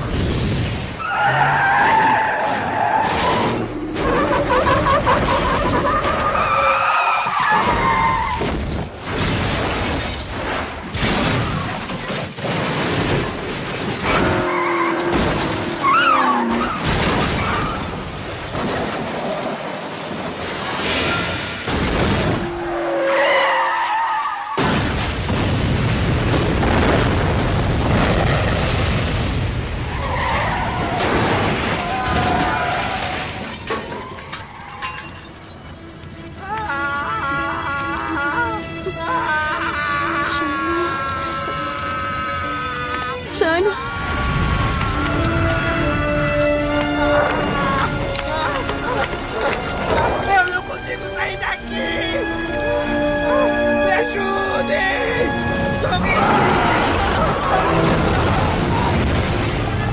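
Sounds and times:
explosions: 0.0s - 1.0s, 16.7s - 22.6s, 24.6s - 33.4s, 56.1s - 59.9s
car crash: 0.0s - 22.8s, 24.5s - 36.4s, 55.8s - 59.9s
tyres squealing: 1.0s - 8.4s, 14.0s - 16.8s
film music: 22.1s - 24.6s, 33.9s - 59.9s
glass shattering: 31.0s - 38.1s.

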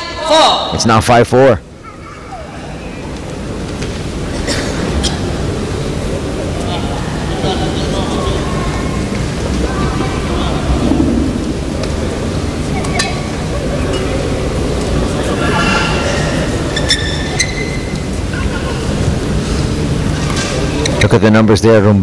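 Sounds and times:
murmur of voices: 0.0s - 22.0s.

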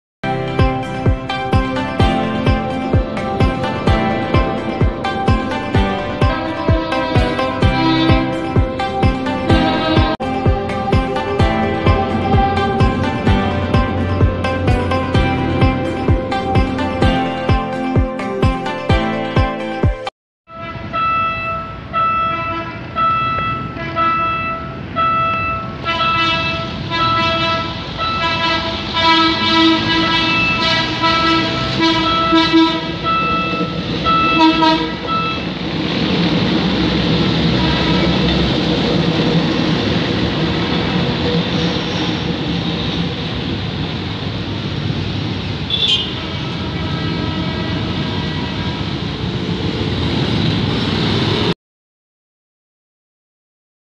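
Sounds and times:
street traffic: 0.2s - 18.8s, 20.5s - 51.6s
train horn: 5.4s - 15.6s, 20.5s - 43.2s, 45.7s - 49.3s.

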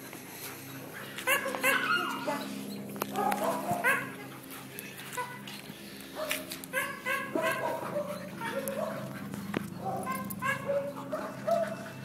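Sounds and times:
dogs barking and yipping: 0.1s - 12.0s.

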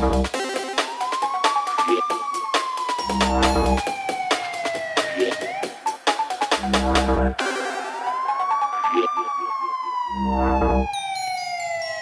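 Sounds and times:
siren-like synth tone gliding: 0.0s - 0.3s, 1.8s - 4.3s, 6.6s - 12.0s
electronic dance music: 0.0s - 1.0s, 3.1s - 4.0s, 5.2s - 7.9s
deep bass burst: 6.6s - 7.4s.

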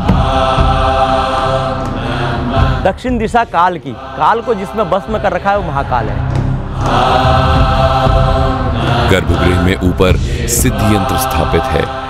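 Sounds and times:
voices chanting on one note: 6.7s - 12.0s.

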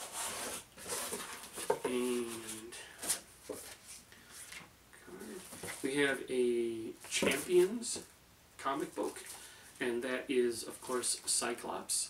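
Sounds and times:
cardboard flaps rustling: 5.4s - 5.9s.

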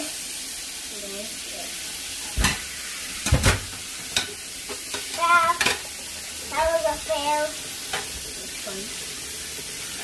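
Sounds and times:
tap water splashing: 2.2s - 10.0s.

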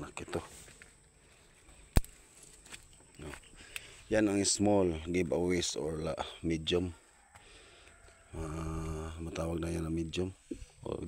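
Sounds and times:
low voice-like hum: 8.3s - 9.4s.

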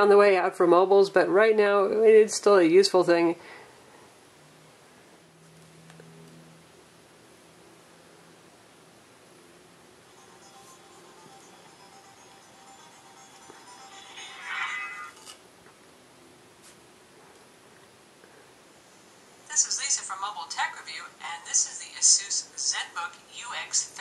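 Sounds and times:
music through phone loudspeaker: 10.1s - 15.1s.

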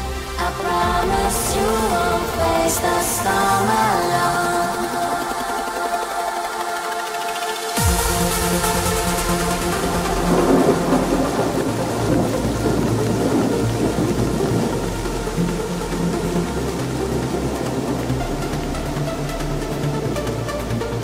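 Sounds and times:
sustained low synth tones: 0.0s - 7.1s, 7.8s - 21.0s
thunder and rain effect: 7.7s - 21.0s.

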